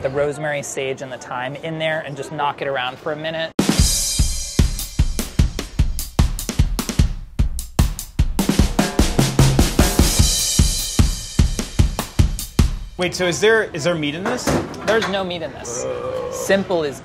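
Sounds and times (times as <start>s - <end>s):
background music with drum beat: 3.6s - 13.0s.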